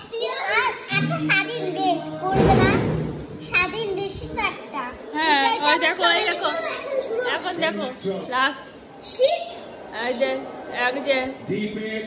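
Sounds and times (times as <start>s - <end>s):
young girl talking: 0.0s - 7.4s, 9.0s - 9.7s.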